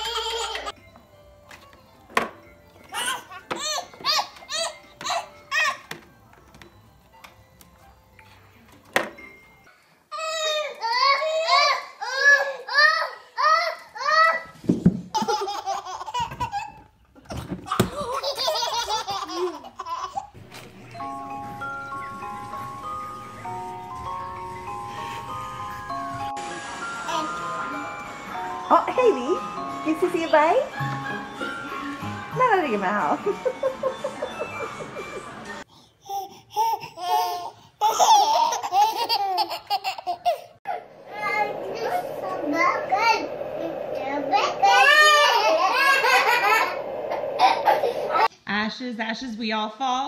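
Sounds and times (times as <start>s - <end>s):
babies laughing: 0.0s - 0.8s, 15.1s - 16.9s, 17.7s - 20.4s, 33.3s - 41.0s, 44.6s - 48.3s
toddlers giggling: 15.1s - 16.8s, 17.7s - 20.3s, 33.2s - 35.6s, 36.6s - 40.9s, 44.6s - 48.3s.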